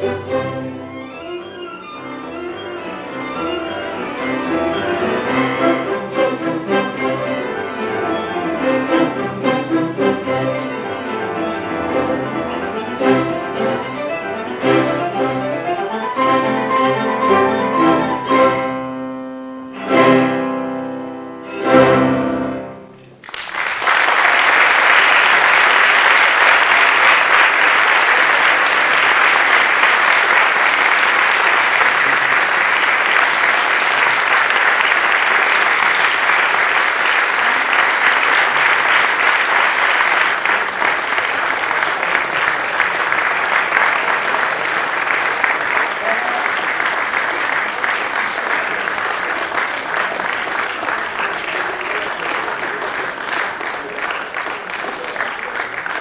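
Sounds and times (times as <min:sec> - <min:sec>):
audience applauding: 0:23.0 - 0:56.0.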